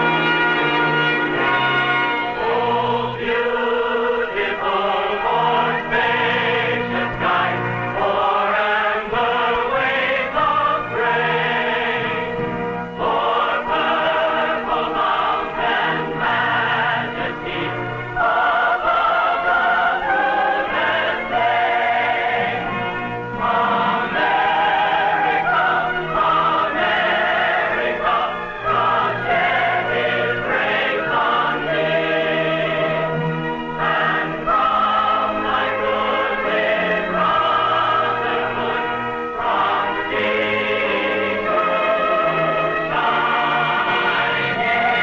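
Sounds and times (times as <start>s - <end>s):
choir singing sustained notes: 0.0s - 45.0s.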